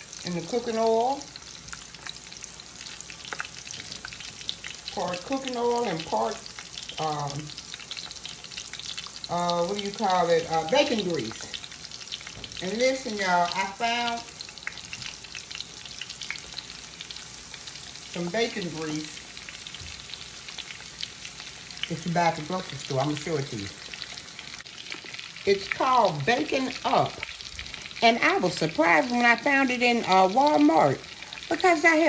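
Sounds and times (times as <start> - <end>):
oil sizzling with crackling pops: 0.0 - 32.0.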